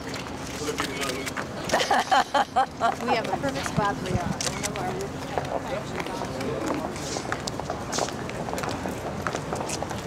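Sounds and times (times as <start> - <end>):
footsteps on pavement: 2.8 - 10.0.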